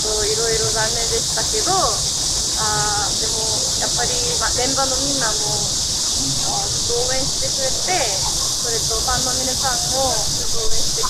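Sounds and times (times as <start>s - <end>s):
voices talking: 0.0s - 2.0s, 2.6s - 11.0s
cicadas buzzing: 0.0s - 11.0s.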